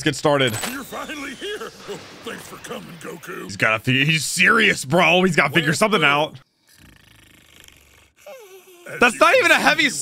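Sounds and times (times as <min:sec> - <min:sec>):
cartoon snoring: 0:06.6 - 0:09.0.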